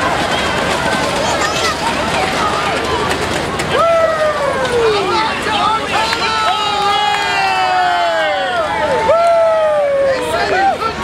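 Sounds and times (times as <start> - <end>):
murmur of crowd: 0.0 - 11.0.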